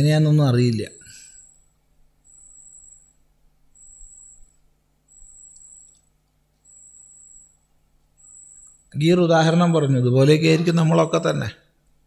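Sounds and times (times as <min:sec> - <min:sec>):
low steady hum: 0:00.0 - 0:12.0
faint high-pitched trill: 0:06.7 - 0:09.0.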